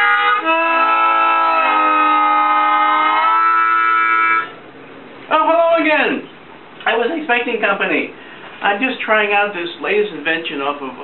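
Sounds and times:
harmonica playing sustained chords: 0.0 - 4.6.

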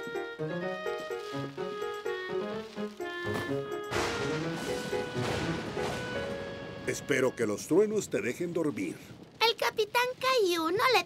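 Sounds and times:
gentle cartoon music: 0.0 - 7.8
thunder rumbling: 1.6 - 11.0.

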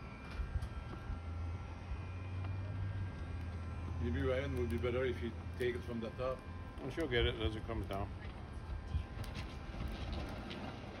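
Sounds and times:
wind rumbling on microphone: 6.5 - 11.0.

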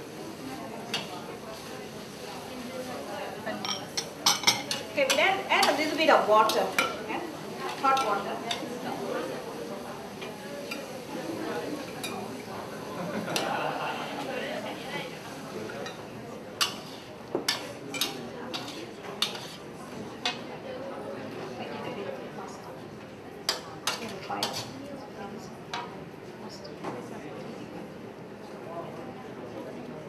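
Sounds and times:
cooking noise: 0.0 - 20.5
spatula clinking on pan: 3.6 - 5.8, 6.4 - 7.0, 16.6 - 19.6
spatula scraping wok: 3.9 - 7.0, 16.6 - 19.8, 23.5 - 24.8.

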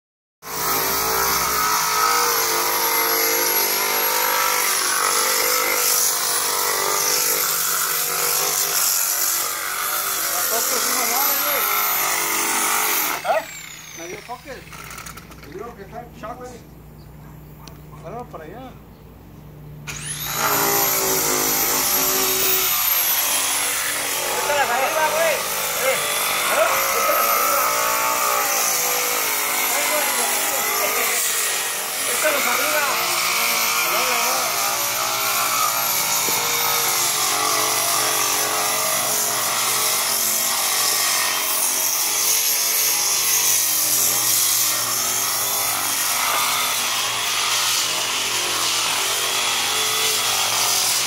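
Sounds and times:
electric sander grinding: 0.5 - 15.8, 19.9 - 51.0.

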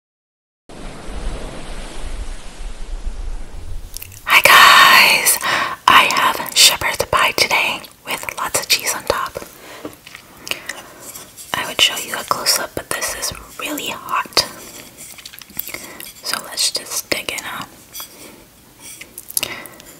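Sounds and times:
low rumble and hiss: 0.7 - 19.9
woman whispering: 4.2 - 9.5, 11.5 - 14.6, 16.2 - 17.7
chewing and wet mouth sounds: 9.9 - 10.8, 14.4 - 16.4, 19.0 - 19.9.

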